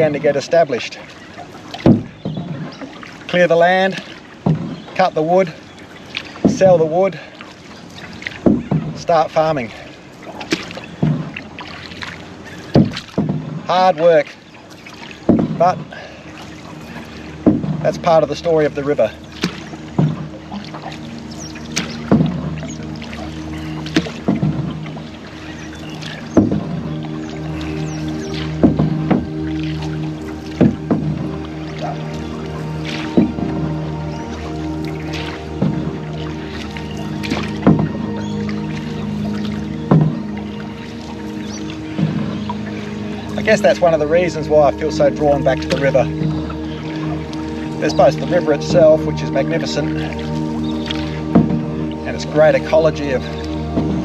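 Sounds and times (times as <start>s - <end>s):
background music with held tones: 0.0s - 54.0s
paddle pulling through water: 0.0s - 54.0s.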